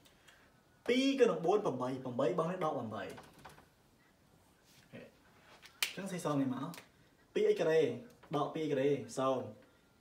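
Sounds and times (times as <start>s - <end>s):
voice: 0.9s - 3.3s, 4.9s - 5.2s, 5.9s - 9.6s.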